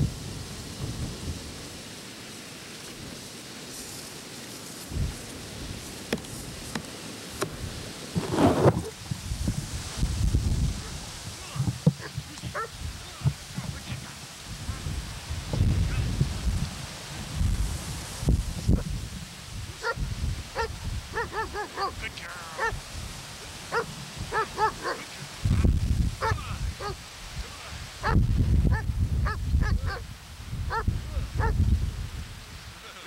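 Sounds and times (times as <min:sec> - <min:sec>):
puppy yipping: 0:12.0 - 0:12.7
low microphone rumble: 0:25.4 - 0:27.0, 0:28.0 - 0:32.5.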